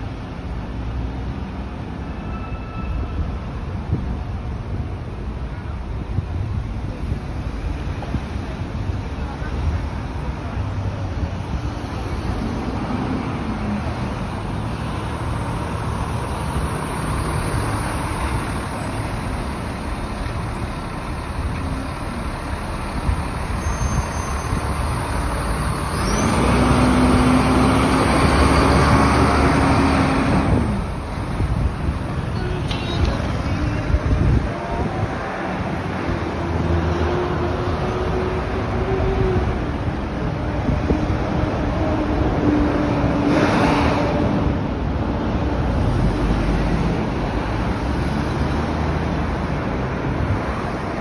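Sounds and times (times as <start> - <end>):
street traffic: 0.0 - 51.0
vehicle engine humming: 6.2 - 51.0.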